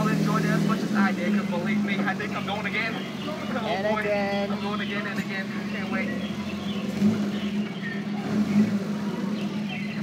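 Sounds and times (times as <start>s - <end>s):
boat motor droning: 0.0s - 10.0s
faint chatter: 0.0s - 10.0s.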